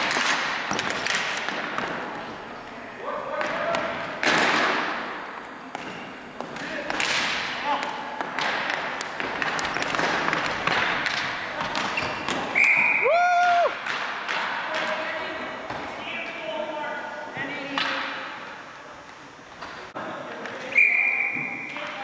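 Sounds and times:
short shrill whistle: 12.6 - 13.1, 20.7 - 21.6
loud held shout: 12.9 - 13.8.

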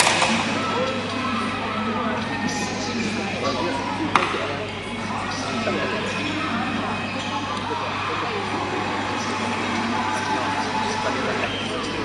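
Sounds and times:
commentator over loudspeakers: 0.0 - 12.0
crowd noise: 0.0 - 12.0.

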